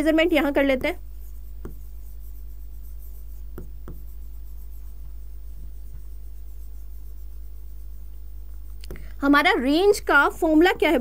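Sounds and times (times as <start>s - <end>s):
low electrical hum: 0.0s - 11.0s
stylus tapping on screen: 0.7s - 6.2s, 8.1s - 9.1s.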